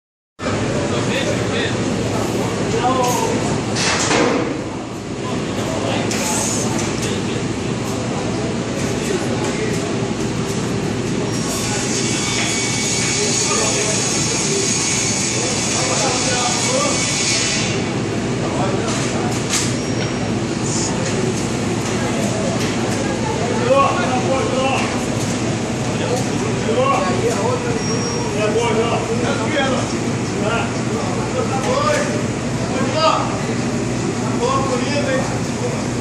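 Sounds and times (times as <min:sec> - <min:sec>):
workshop noise: 0:00.4 - 0:36.0.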